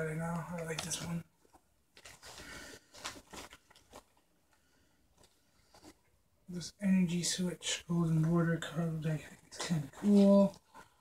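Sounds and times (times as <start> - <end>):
trading cards rustling: 0.2 - 6.1, 8.2 - 11.0.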